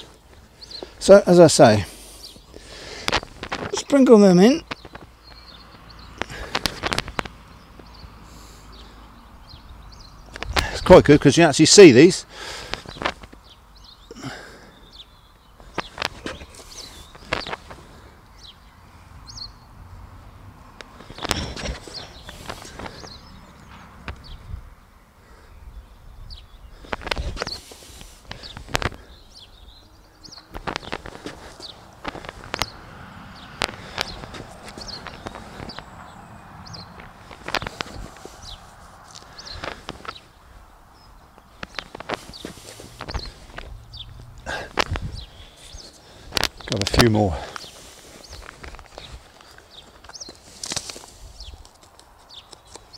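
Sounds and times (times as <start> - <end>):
birds chirping: 0.0 - 52.9.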